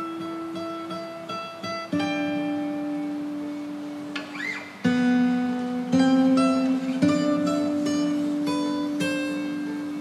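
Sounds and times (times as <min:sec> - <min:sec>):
plucked guitar music: 0:00.0 - 0:10.0.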